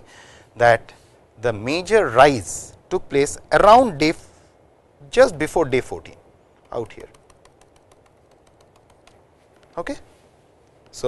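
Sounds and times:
stylus tapping on tablet screen: 7.0s - 9.8s.

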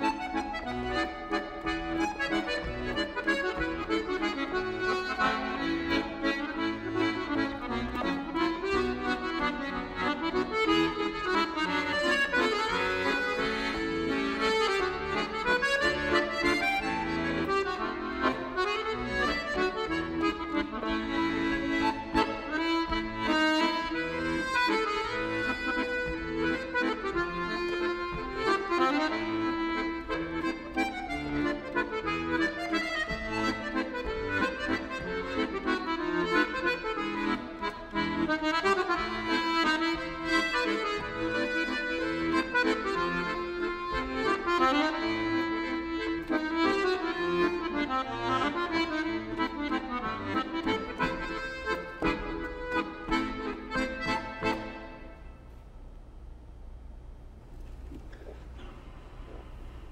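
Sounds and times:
piano accordion solo tune: 0.0s - 55.4s.

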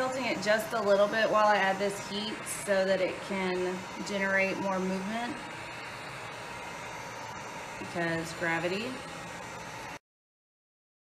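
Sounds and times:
heat gun blowing: 0.0s - 10.0s.

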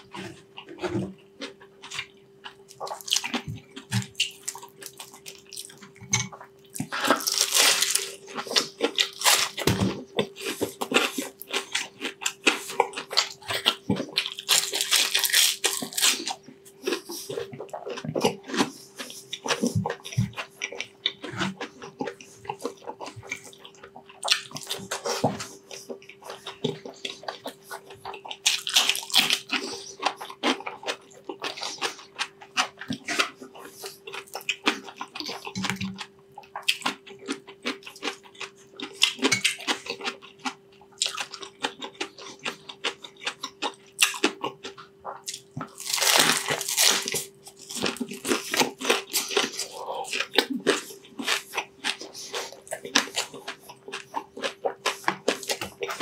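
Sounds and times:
crunching and chewing food: 0.0s - 56.0s.

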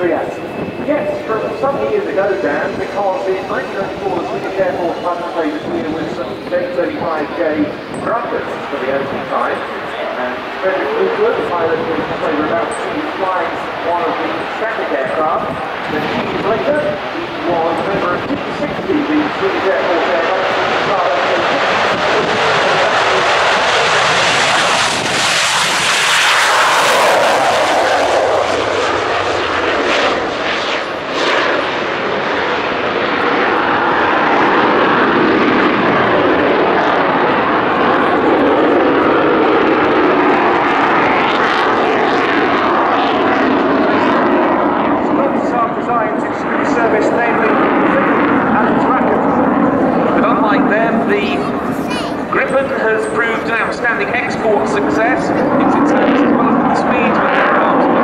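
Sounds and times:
jet engine roaring: 0.0s - 58.0s.

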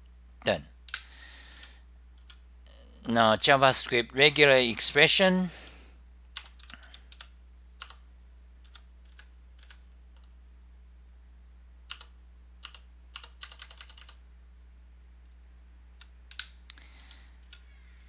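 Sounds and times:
faint steady low hum: 0.0s - 18.0s
computer keyboard keystrokes: 6.4s - 8.0s, 8.6s - 9.8s, 11.9s - 14.2s.

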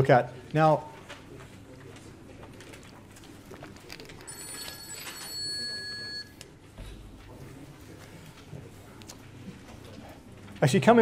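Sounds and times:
faint room noise: 0.0s - 11.0s
electronic ringing tone: 4.3s - 6.4s.

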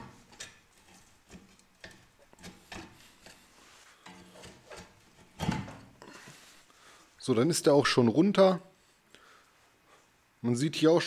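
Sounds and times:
metal pry tool scraping metal: 0.0s - 5.6s.

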